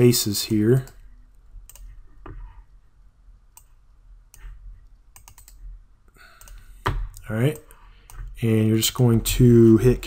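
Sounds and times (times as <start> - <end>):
computer mouse clicks: 1.7 - 2.4, 3.5 - 5.6, 6.4 - 8.3.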